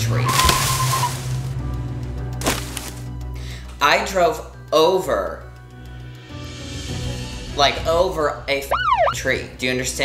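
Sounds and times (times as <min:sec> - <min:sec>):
low steady music: 0:00.0 - 0:10.0
sharp wooden crack: 0:00.3 - 0:01.5, 0:02.4 - 0:03.1.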